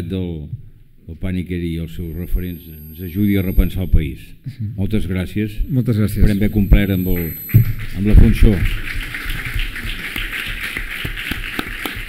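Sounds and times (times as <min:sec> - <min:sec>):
audience applauding: 0:07.5 - 0:12.0.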